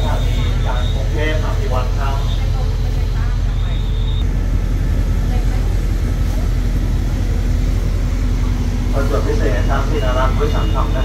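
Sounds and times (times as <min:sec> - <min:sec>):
diesel train idling: 0:00.0 - 0:11.0.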